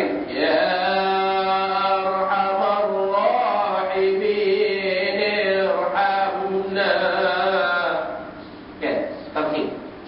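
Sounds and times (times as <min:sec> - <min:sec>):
man chanting: 0:00.0 - 0:09.1.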